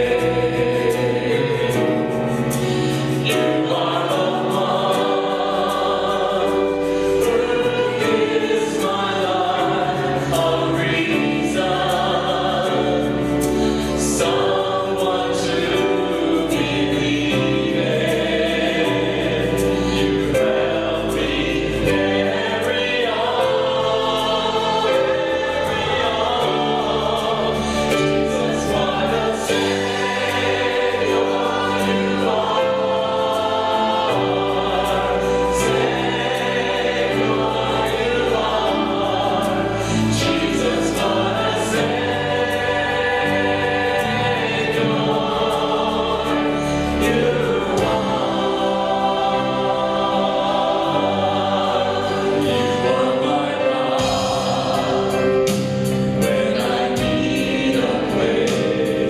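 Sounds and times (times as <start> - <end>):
choir singing gospel song: 0.0 - 59.0
instrumental accompaniment: 0.0 - 59.0.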